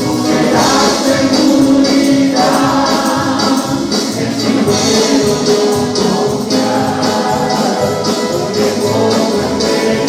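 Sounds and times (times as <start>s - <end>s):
group singing worship song: 0.0s - 10.0s
tambourine jingling: 0.0s - 10.0s.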